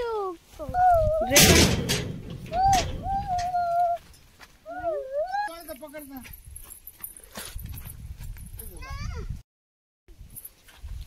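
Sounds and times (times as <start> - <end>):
wavering vocal call: 2.5 - 4.1.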